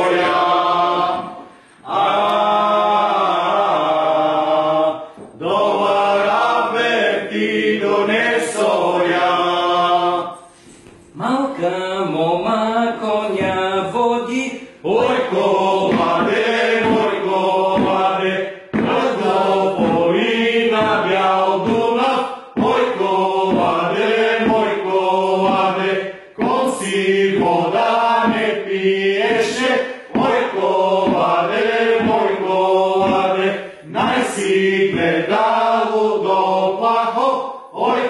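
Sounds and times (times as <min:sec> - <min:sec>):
men singing together: 0:00.0 - 0:10.8, 0:11.6 - 0:38.0.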